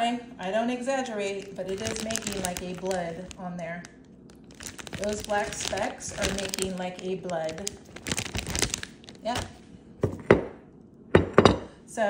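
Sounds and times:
kitchenware knocking on dishes: 11.2 - 11.7.

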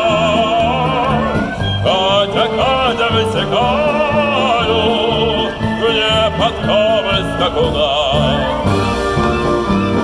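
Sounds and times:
man singing into microphone: 0.0 - 8.8
band accompanying: 0.0 - 10.0.

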